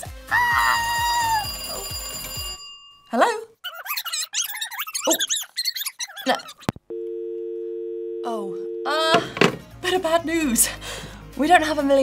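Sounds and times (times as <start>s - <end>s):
telephone bell ringing: 1.4s - 3.0s, 6.9s - 9.1s
person squealing: 3.6s - 6.7s.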